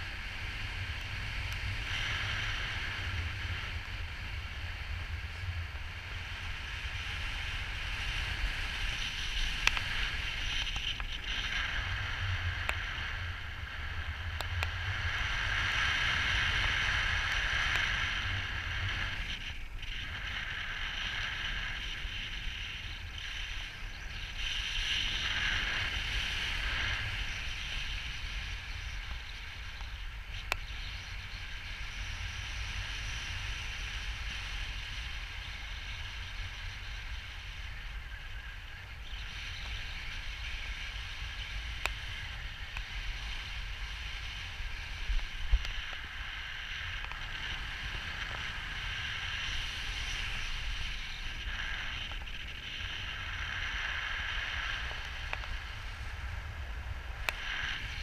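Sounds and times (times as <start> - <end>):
wind rushing over microphone: 0.0 - 58.0
faint clicks: 9.0 - 11.7.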